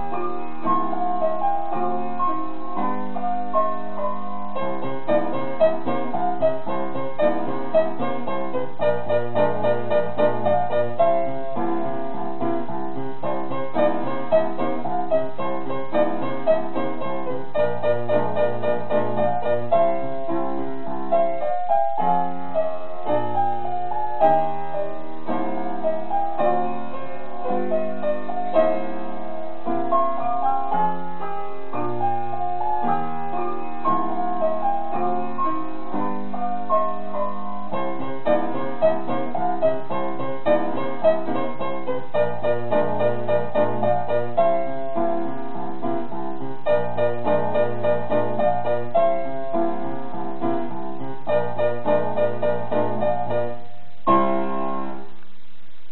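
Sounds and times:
upright piano piece: 0.0s - 55.9s.

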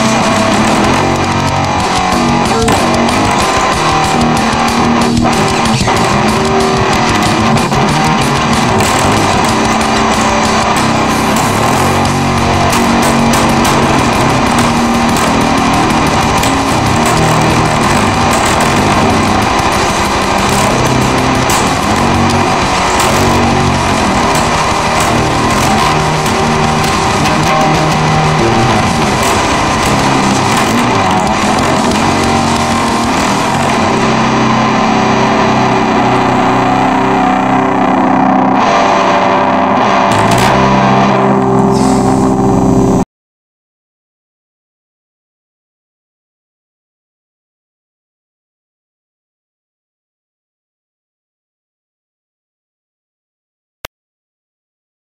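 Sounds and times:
heavy metal band playing: 0.0s - 43.0s
distorted electric guitar: 0.0s - 43.1s.

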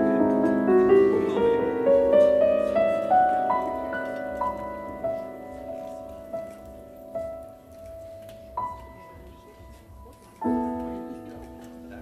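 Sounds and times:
piano notes on keyboard: 0.0s - 12.0s.

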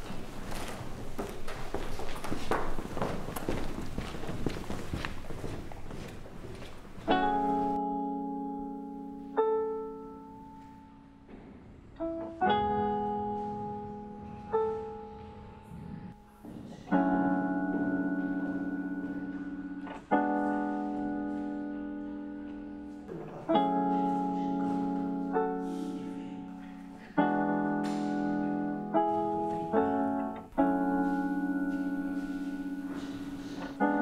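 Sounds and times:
slow piano chords: 5.2s - 34.0s.

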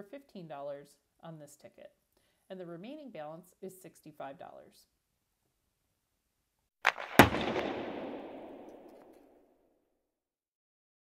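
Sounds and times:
sharp hits: 6.9s - 9.2s
crackling reverberant tail: 6.9s - 9.3s.

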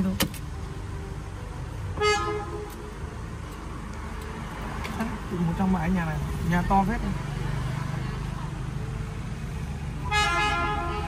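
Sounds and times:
car interior hum: 0.0s - 7.4s
car horn toot: 2.0s - 2.7s, 10.0s - 11.0s.

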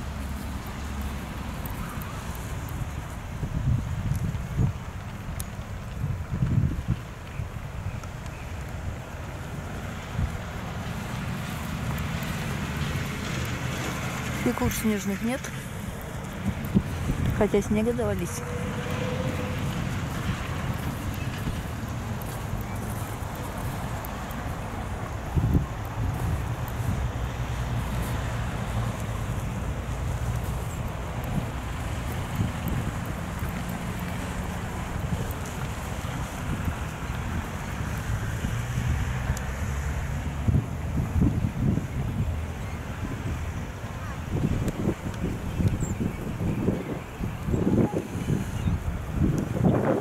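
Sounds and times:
wind noise on microphone: 0.0s - 50.0s.

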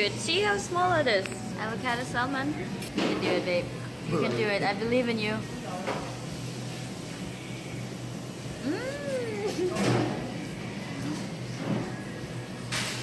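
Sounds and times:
restaurant background noise: 0.0s - 13.0s
person whimpering: 8.6s - 9.8s.

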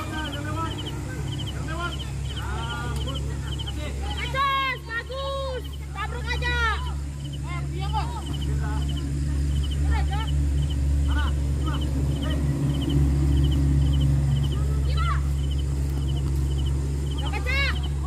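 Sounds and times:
players shouting: 0.0s - 18.0s
steady low hum: 0.0s - 18.0s
faint high chirp: 0.1s - 3.8s, 8.2s - 14.6s, 15.4s - 18.0s.

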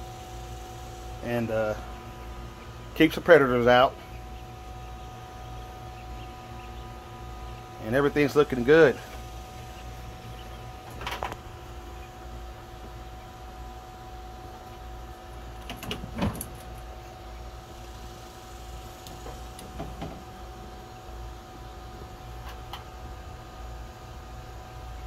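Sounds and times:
small fan humming: 0.0s - 25.0s.

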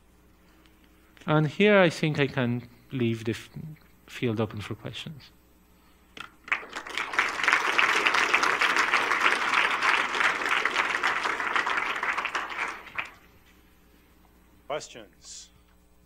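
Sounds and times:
audience applauding: 6.4s - 13.3s.

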